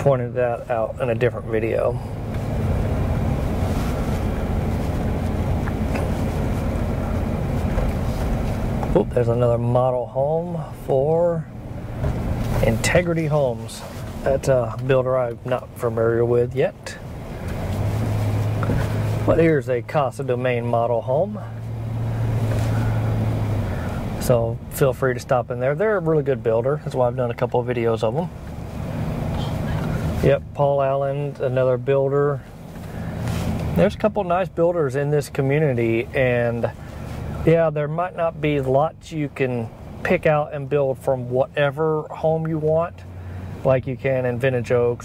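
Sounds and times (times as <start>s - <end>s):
car road noise: 0.0s - 45.0s.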